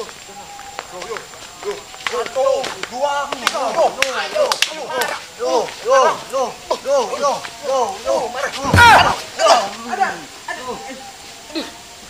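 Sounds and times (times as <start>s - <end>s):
men shouting: 0.0s - 12.0s.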